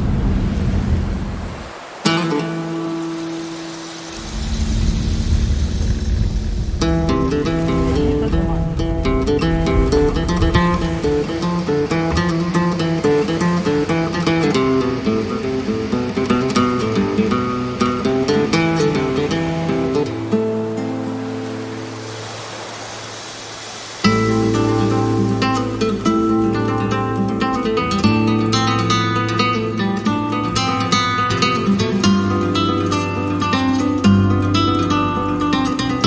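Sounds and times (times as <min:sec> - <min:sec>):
hiss-like rushing noise: 0:00.0 - 0:27.9
car engine and road noise: 0:00.0 - 0:29.6
guitar music: 0:02.0 - 0:22.1, 0:24.0 - 0:36.0.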